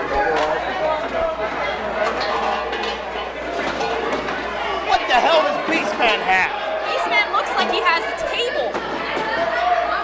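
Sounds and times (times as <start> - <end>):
people talking and shouting: 0.0 - 10.0.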